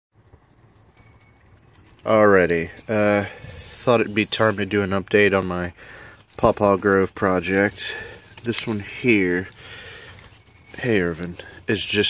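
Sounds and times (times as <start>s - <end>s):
faint outdoor ambience: 0.2s - 12.0s.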